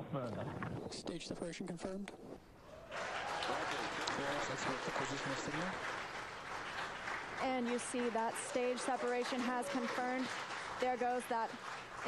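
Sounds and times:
crowd cheering and applauding: 2.6s - 12.0s.

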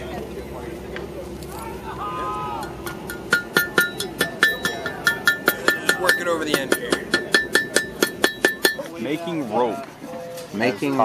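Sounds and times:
hammer striking iron on anvil: 2.6s - 8.9s.

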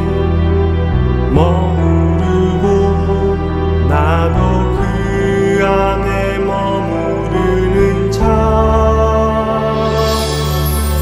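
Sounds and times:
deep bass note: 0.0s - 11.0s.

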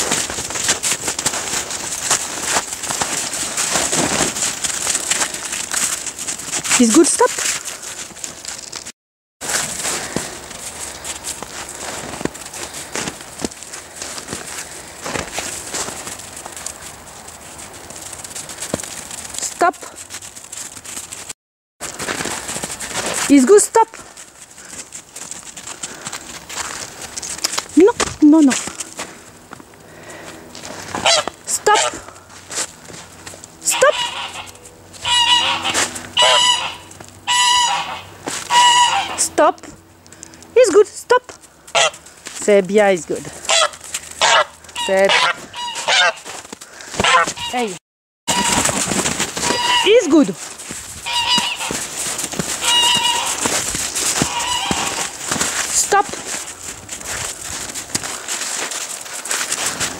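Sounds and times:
footsteps crunching in snow: 0.0s - 39.1s, 41.2s - 59.9s
outdoor background noise: 0.0s - 59.9s
goose honking: 30.9s - 32.1s, 33.6s - 39.4s, 41.7s - 42.1s, 43.4s - 46.4s, 47.0s - 50.4s, 51.0s - 55.3s.

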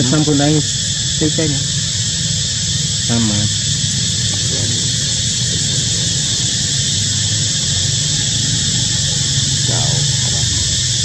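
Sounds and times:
insects buzzing: 0.0s - 11.0s
low hum: 0.0s - 11.0s.

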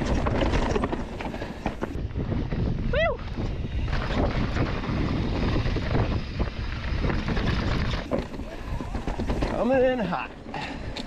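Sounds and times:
wind noise on microphone: 0.0s - 9.7s
bike rattling over rock: 0.0s - 10.3s.

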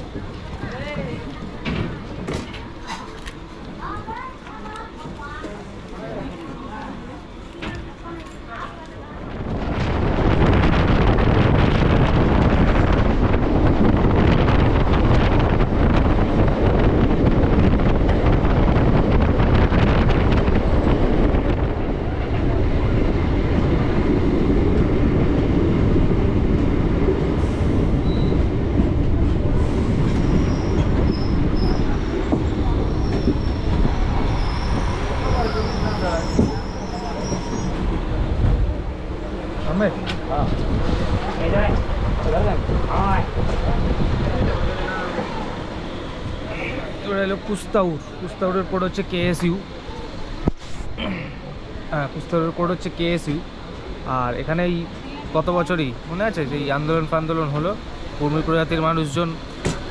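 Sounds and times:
train wheels rumbling on rail: 0.0s - 59.9s
faint high wheel squeal: 28.0s - 28.5s, 30.2s - 32.1s, 32.8s - 37.8s.

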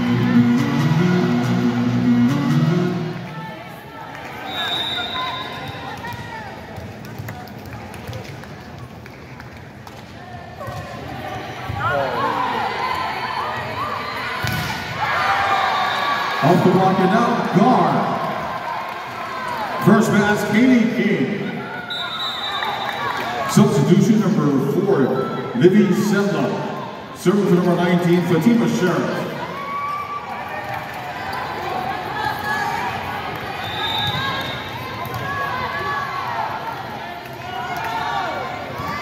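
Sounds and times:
music over loudspeakers: 0.0s - 3.2s
crowd chatter: 0.0s - 39.0s
short high whistle: 4.5s - 5.8s.

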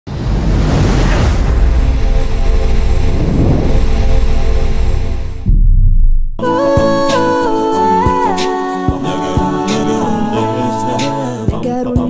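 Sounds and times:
deep rumbling drone: 0.2s - 6.4s
sustained tones: 1.5s - 8.3s.

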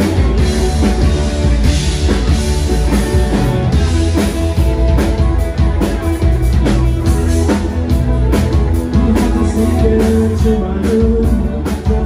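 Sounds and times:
drum kit beat: 0.0s - 12.0s
electric guitar chords: 0.0s - 12.0s.

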